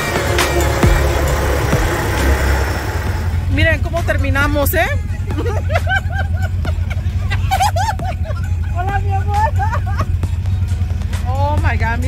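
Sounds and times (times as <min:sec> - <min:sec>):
background music with beat: 0:00.0 - 0:12.0
people's voices: 0:00.0 - 0:12.0
quad bike engines rumbling: 0:00.0 - 0:12.0.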